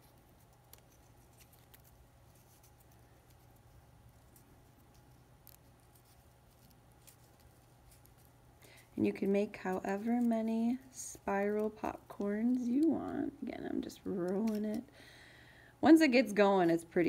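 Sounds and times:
paper strip rustling and ticking: 0.0 - 14.9
faint low hum: 0.0 - 17.0.

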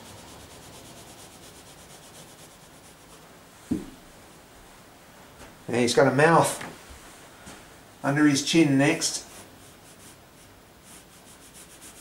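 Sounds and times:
pencil shading on paper: 0.0 - 3.2, 9.3 - 12.0
dull thump: 3.7 - 4.0.

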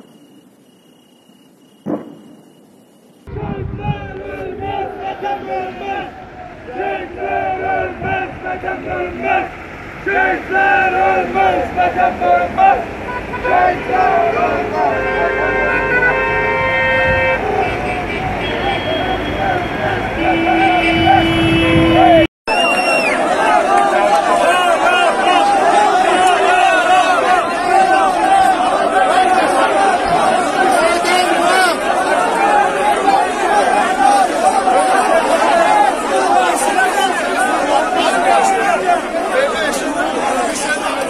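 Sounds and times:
large crowd shouting: 3.2 - 41.0
car horns honking: 6.8 - 22.3.

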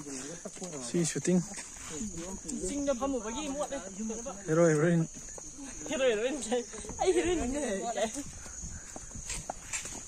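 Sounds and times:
footsteps on leafy dirt path: 0.0 - 10.0
women's voices: 1.9 - 4.5, 5.5 - 8.8.

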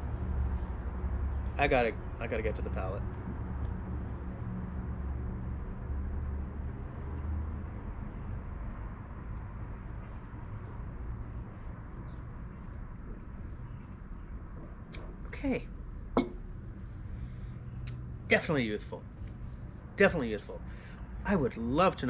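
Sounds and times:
low urban rumble: 0.0 - 22.0.

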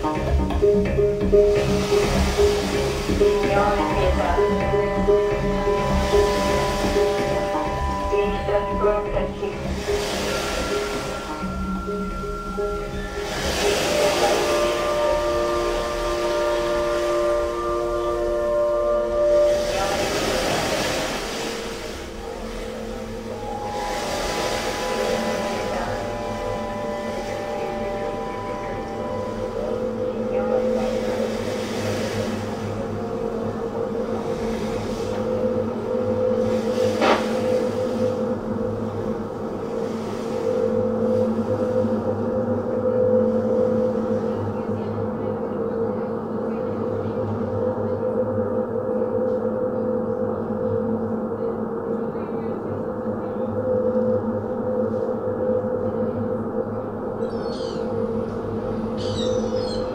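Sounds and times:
washes of noise: 0.0 - 45.2
low electronic drone: 0.0 - 59.9
chirping high-pitched textures: 2.6 - 22.0, 23.2 - 32.7, 56.8 - 59.9.

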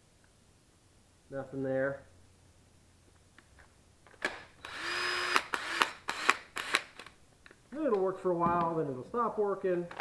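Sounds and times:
cordless drill motor stuttering: 4.3 - 7.1.

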